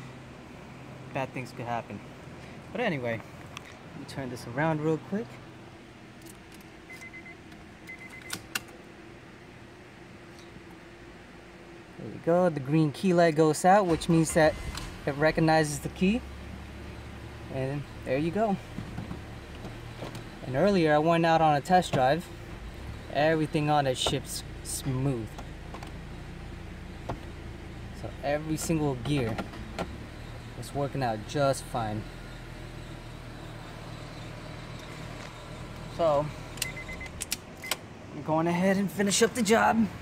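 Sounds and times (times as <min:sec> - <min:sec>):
car engine idling: 0:00.0 - 0:40.0
sharp clicks: 0:36.6 - 0:37.8.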